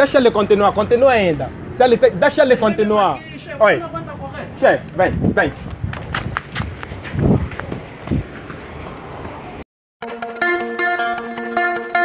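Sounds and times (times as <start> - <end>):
low street rumble: 0.0 - 9.6
wind buffeting microphone: 4.1 - 9.6.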